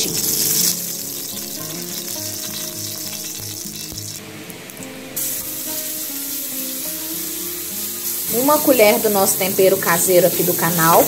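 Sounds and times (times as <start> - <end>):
spatula stirring in a pan: 0.0 - 4.2
oil sizzling in a pan: 0.0 - 11.0.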